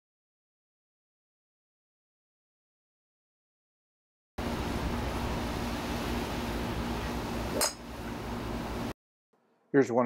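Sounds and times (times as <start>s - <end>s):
faint hum: 4.4s - 8.9s.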